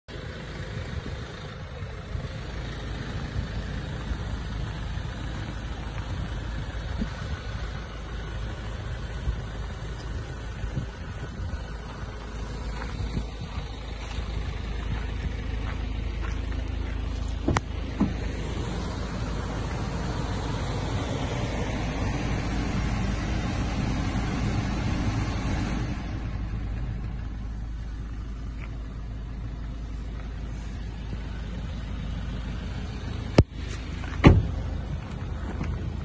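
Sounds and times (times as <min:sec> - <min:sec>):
diesel engine idling: 0:00.0 - 0:36.0.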